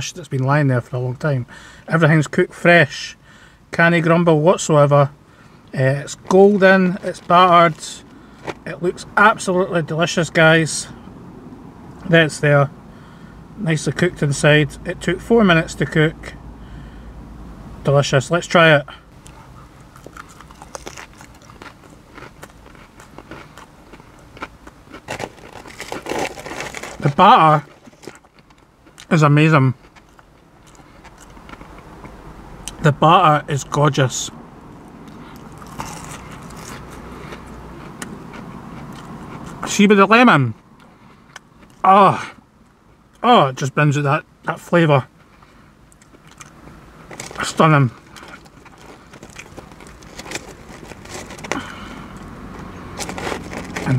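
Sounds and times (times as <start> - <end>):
low steady car hum: 0.0 - 53.9
man chewing crunchy food: 19.2 - 29.1, 29.8 - 32.8, 34.8 - 39.6, 40.8 - 41.8, 45.9 - 53.9.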